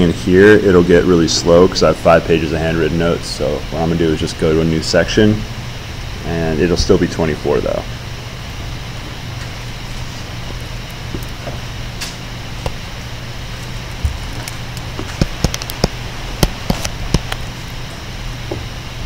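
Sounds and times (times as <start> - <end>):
steady low hum: 0.0 - 19.0
stylus tapping on screen: 14.0 - 17.5.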